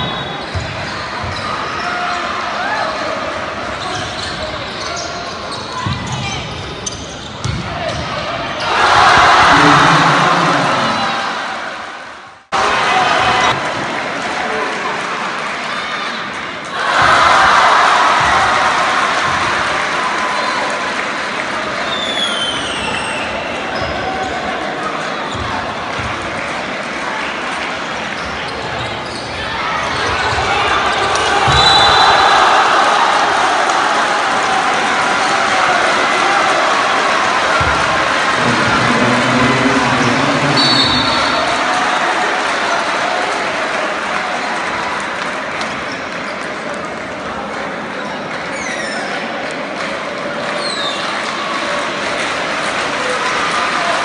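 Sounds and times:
sneakers squeaking: 0.0 - 2.2, 3.6 - 8.9, 21.9 - 24.5, 25.2 - 26.1, 28.1 - 30.4, 40.5 - 41.6
players' voices: 0.0 - 54.0
spectators cheering: 8.5 - 24.8, 25.4 - 47.1, 49.0 - 54.0
high whistle: 40.6 - 41.5.

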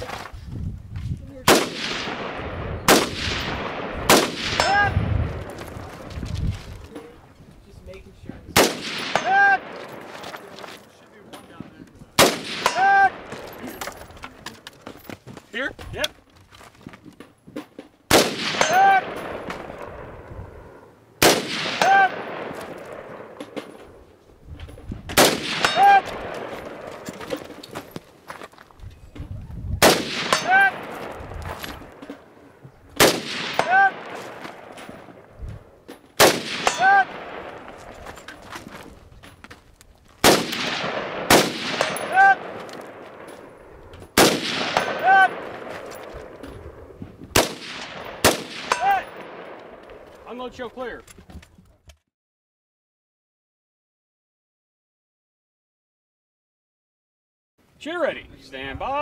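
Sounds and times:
rifle shots: 1.5 - 6.1, 8.6 - 10.6, 12.2 - 13.6, 18.1 - 23.9, 25.1 - 27.1, 29.8 - 32.0, 33.0 - 35.3, 36.2 - 38.0, 40.2 - 46.4, 47.3 - 50.2.

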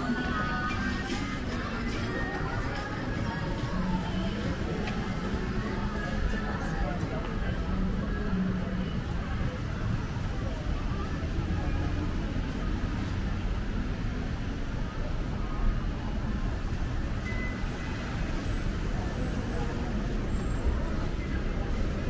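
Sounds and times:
road traffic hum: 0.0 - 22.0
voices of passers-by: 0.0 - 22.0.

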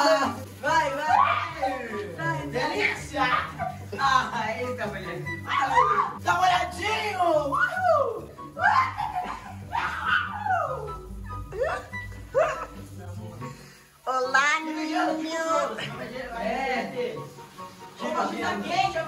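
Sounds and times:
music with low beat: 0.0 - 13.6
shower water spraying: 0.0 - 19.0
boys yelping and shrieking: 1.1 - 1.8, 2.7 - 3.8, 5.5 - 6.2, 7.6 - 11.0.

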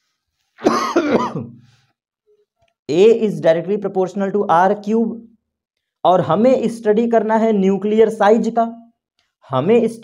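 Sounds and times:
man clearing his throat: 0.6 - 1.6.

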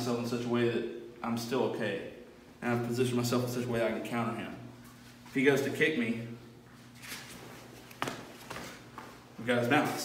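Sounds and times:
feet shuffling on padded mat: 6.7 - 9.3.

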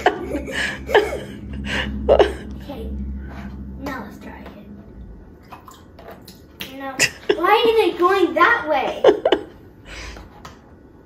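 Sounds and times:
water running through tubes: 4.0 - 8.3.

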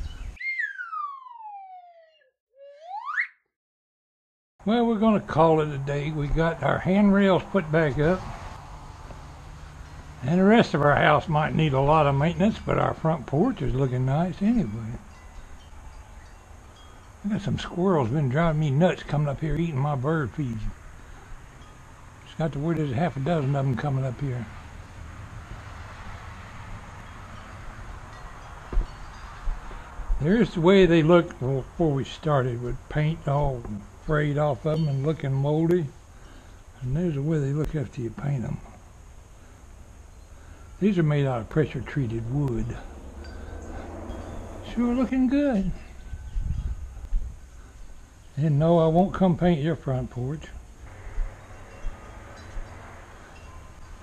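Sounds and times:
outdoor background noise: 0.0 - 2.1, 4.6 - 54.0
gliding whistle tone: 0.0 - 3.5.

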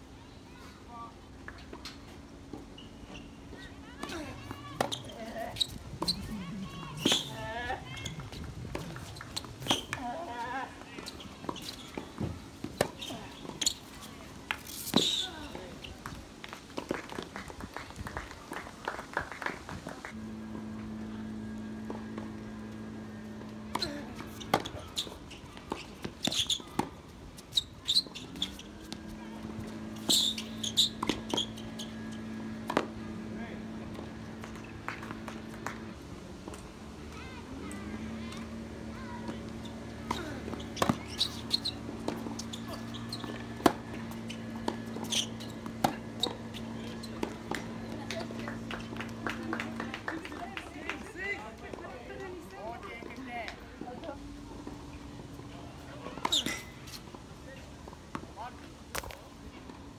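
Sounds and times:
tennis ball bounces: 4.0 - 10.4, 20.1 - 51.8
steady low hum: 20.0 - 25.6, 28.6 - 50.1.

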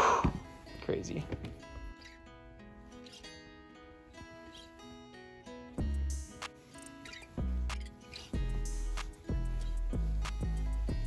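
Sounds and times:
plucked guitar melody: 0.4 - 11.0.

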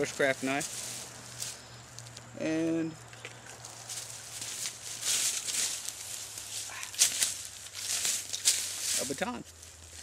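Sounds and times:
rustling in dry leaf litter: 0.0 - 2.6, 3.6 - 10.0
stick cracking: 6.9 - 8.7.

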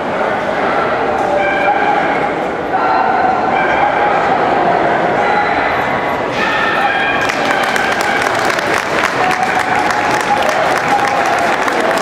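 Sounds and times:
murmur of crowd chatter: 0.0 - 12.0.

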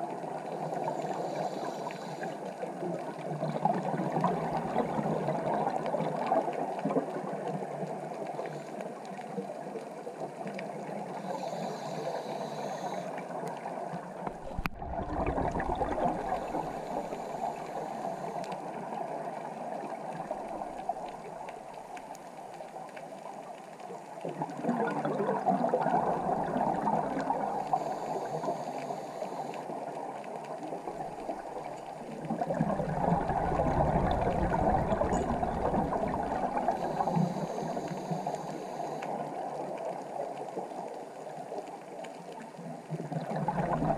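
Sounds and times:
scuba bubbles gurgling underwater: 0.0 - 43.9
water hiss: 0.3 - 2.6, 11.1 - 21.4, 25.7 - 30.1, 32.6 - 40.6.

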